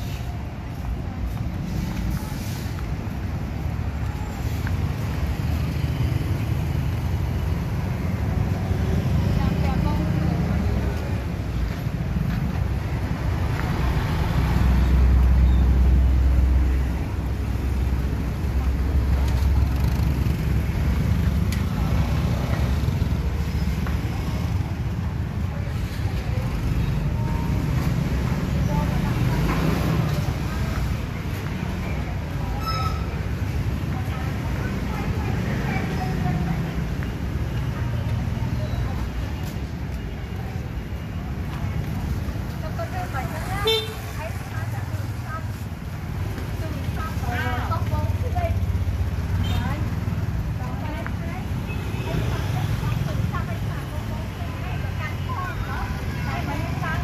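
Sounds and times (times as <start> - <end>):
motorbikes passing: 0.0 - 57.0
street traffic: 0.0 - 57.0.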